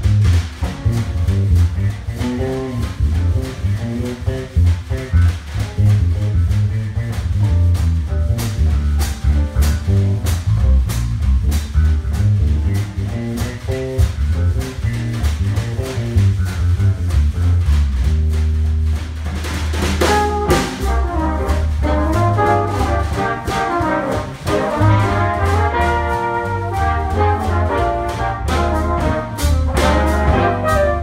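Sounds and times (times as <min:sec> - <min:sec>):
drum kit: 0:00.0 - 0:31.0
electric bass groove: 0:00.0 - 0:31.0
trumpet melody: 0:20.0 - 0:31.0.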